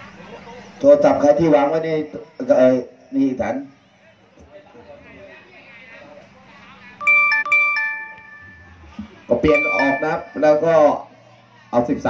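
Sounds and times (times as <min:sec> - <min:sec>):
electronic two-note chime: 0:07.0 - 0:11.0.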